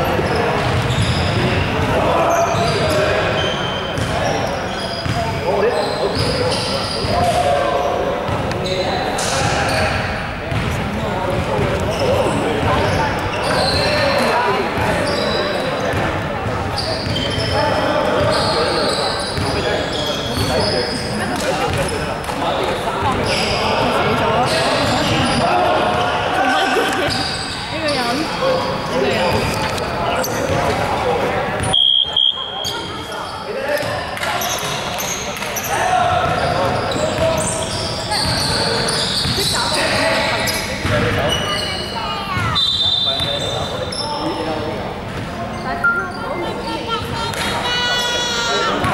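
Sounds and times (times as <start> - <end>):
indistinct voices talking: 0.0 - 48.9
basketballs bouncing on wooden court: 10.5 - 13.1, 36.2 - 37.4.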